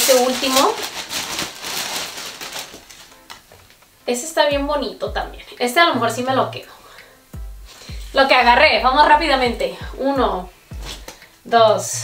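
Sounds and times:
plastic bag crinkling: 0.0s - 4.0s
faint background music: 0.0s - 12.0s.

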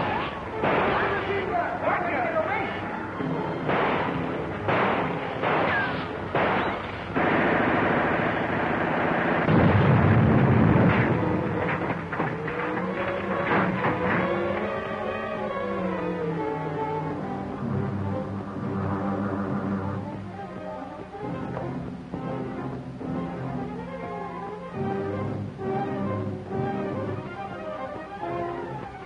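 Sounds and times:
sharp gunshots: 0.0s - 1.5s, 3.6s - 12.0s
dramatic orchestral film music: 0.0s - 9.1s, 10.2s - 29.0s
deep boom: 9.4s - 11.4s.

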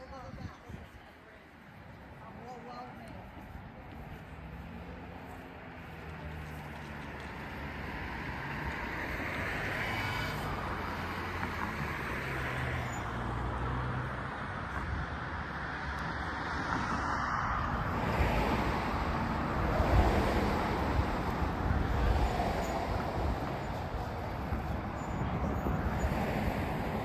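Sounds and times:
road traffic hum: 0.0s - 27.0s
vehicle passing: 1.8s - 27.0s.

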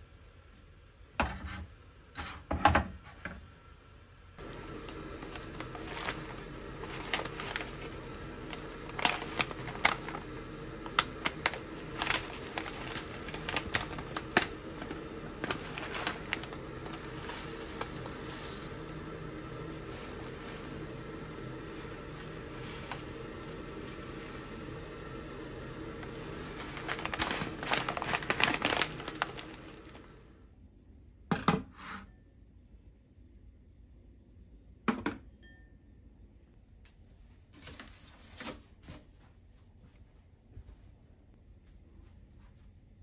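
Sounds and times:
foil pouch crinkling: 4.4s - 21.0s, 21.6s - 24.8s, 26.0s - 30.2s
dried seaweed shaken into bowl: 10.9s - 19.1s, 21.8s - 24.8s, 26.0s - 30.0s.

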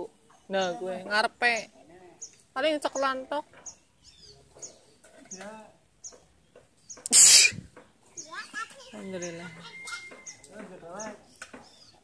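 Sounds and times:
person sneezing: 7.1s - 7.6s.

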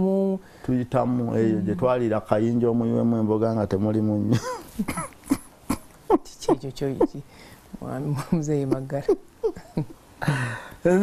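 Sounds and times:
man coughing: 4.4s - 7.2s.

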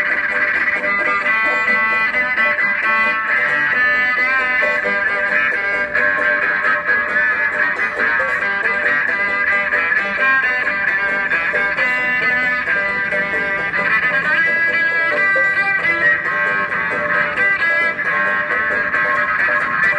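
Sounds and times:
banjo plucking: 0.0s - 19.9s
bowed electric upright bass: 0.0s - 19.9s.

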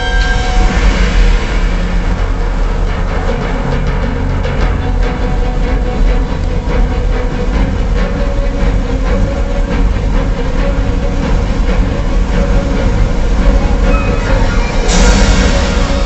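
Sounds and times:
deep steady rumble: 0.0s - 16.0s
music over loudspeakers: 5.1s - 16.0s
held tone: 13.6s - 15.5s.

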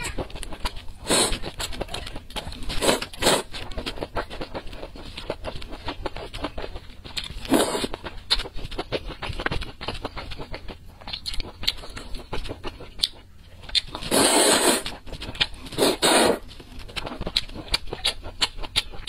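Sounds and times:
wet chewing: 0.0s - 19.0s
slurping noodles: 1.0s - 1.7s, 2.6s - 3.6s, 7.4s - 8.0s, 14.0s - 15.0s, 15.7s - 16.4s.

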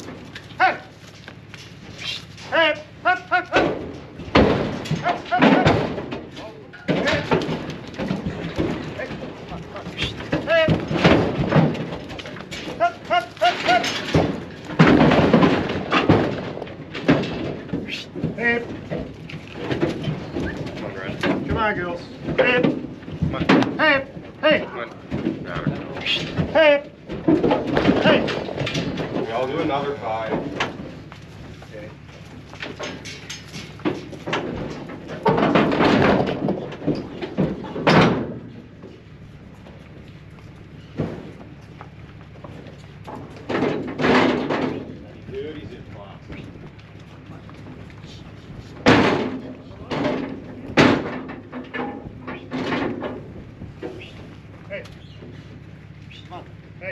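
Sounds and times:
animals knocking trailer sides: 0.0s - 56.9s
hooves thudding on trailer floor: 0.0s - 56.9s
people shouting calls: 0.5s - 1.0s, 2.0s - 3.8s, 4.9s - 7.4s, 9.0s - 10.9s, 12.7s - 14.1s, 23.6s - 24.9s, 26.0s - 27.0s, 27.9s - 28.4s.

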